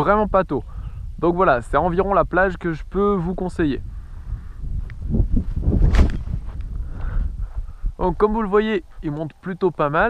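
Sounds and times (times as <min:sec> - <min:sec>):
wind rumbling on microphone: 0:00.0 - 0:10.0
footsteps in grass: 0:04.6 - 0:09.2
loud rush of glider throw: 0:05.4 - 0:06.6.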